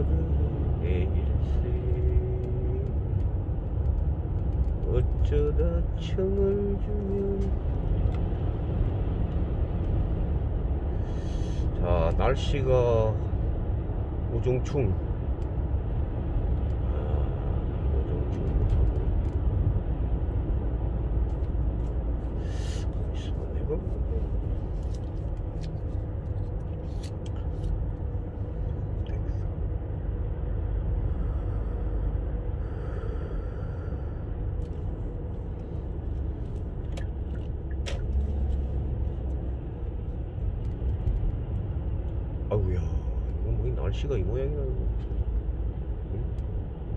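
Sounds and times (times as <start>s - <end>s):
car cabin road rumble: 0.0s - 46.9s.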